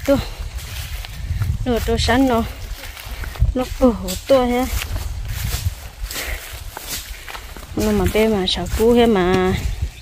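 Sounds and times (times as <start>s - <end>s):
person's voice: 0.0s - 0.4s, 1.6s - 4.9s, 7.7s - 9.8s
footsteps through dry grass: 0.0s - 10.0s.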